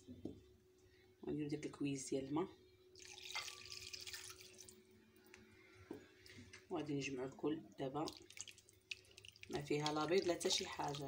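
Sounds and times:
water splashing into bowl: 0:03.0 - 0:04.8, 0:08.0 - 0:11.0.

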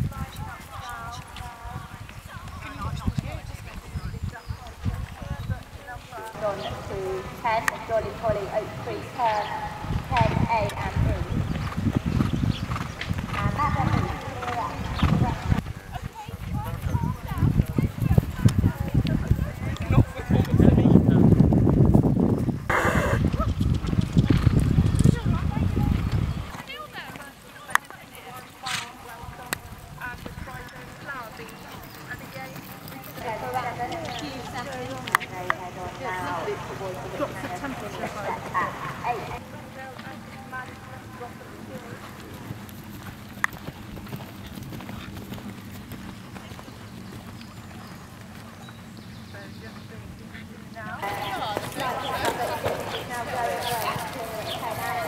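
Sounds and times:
indistinct voices: 0:00.0 - 0:11.4, 0:22.7 - 0:42.6, 0:49.3 - 0:55.0
horse hoofbeats on grass: 0:00.0 - 0:55.0.

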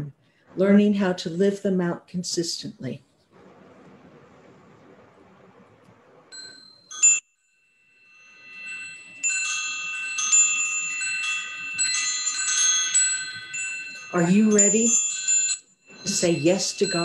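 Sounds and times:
metal chimes ringing: 0:06.3 - 0:17.0.

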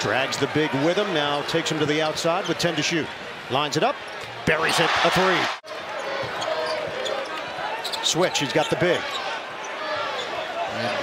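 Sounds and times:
hum of arena crowd: 0:00.0 - 0:11.0.

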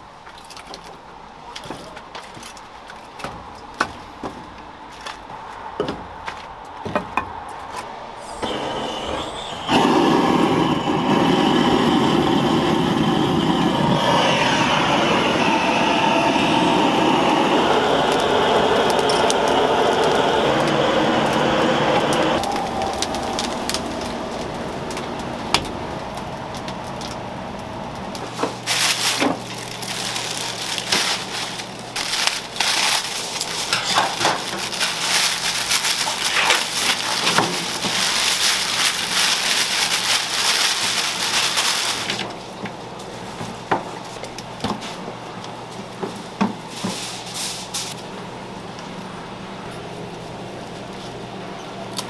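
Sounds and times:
blowtorches rushing: 0:08.2 - 0:42.4.

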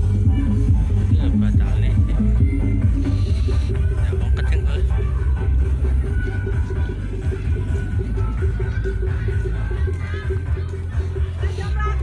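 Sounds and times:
bass-heavy music with steady beat: 0:00.0 - 0:12.0.

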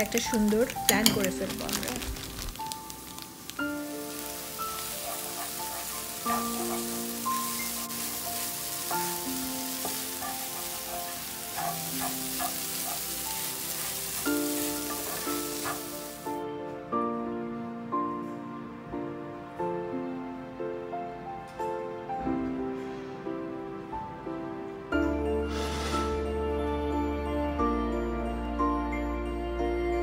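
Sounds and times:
eggs sizzling in a frying pan: 0:00.0 - 0:16.4
slow melodic background music: 0:00.0 - 0:30.0.

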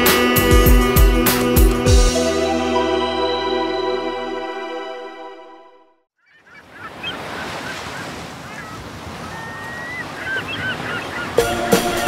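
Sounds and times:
music track: 0:00.0 - 0:06.0, 0:11.4 - 0:12.0.

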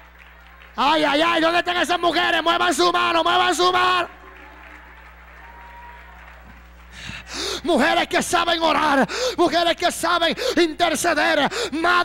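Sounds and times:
faint applause: 0:00.0 - 0:01.7, 0:03.1 - 0:07.8
low electrical hum: 0:00.0 - 0:12.0.

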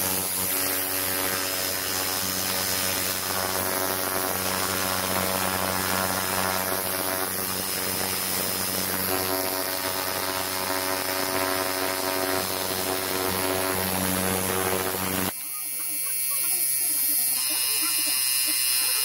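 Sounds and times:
ultrasonic cleaner buzzing: 0:00.0 - 0:19.0.

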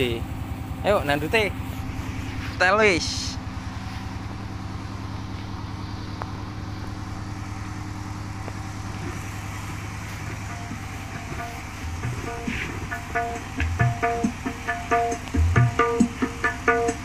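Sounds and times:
low throbbing hum: 0:00.0 - 0:17.0.

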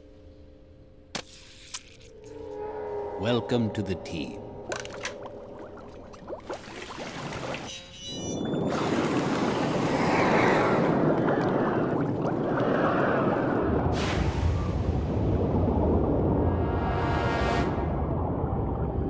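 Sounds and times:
background music: 0:00.0 - 0:06.2
liquid rushing through a pipe: 0:04.7 - 0:07.7, 0:08.5 - 0:16.3
deep rumble: 0:09.8 - 0:19.0.

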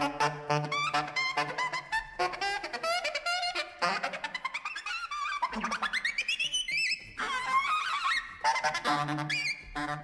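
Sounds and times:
saxophone jazz music: 0:00.0 - 0:02.8, 0:08.6 - 0:10.0.

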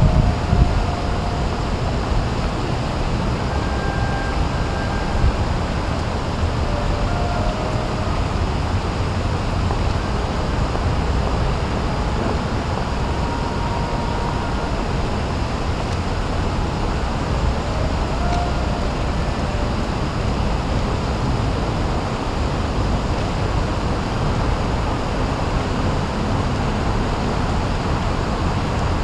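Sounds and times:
low rumble of urban traffic: 0:00.0 - 0:29.0.

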